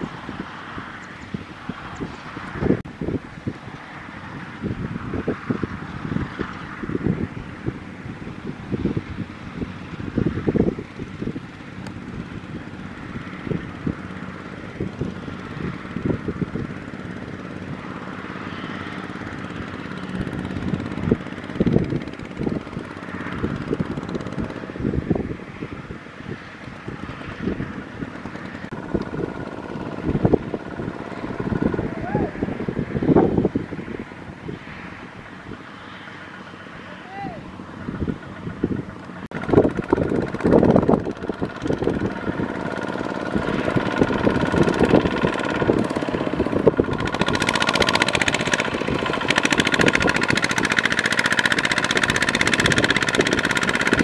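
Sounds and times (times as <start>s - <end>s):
tractor diesel engine running: 0.0s - 54.0s
wind buffeting microphone: 0.0s - 54.0s.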